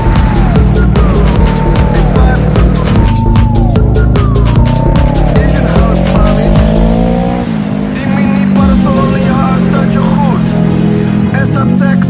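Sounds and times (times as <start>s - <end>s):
motorcycle engine revving: 0.0s - 12.0s
music: 0.0s - 12.0s.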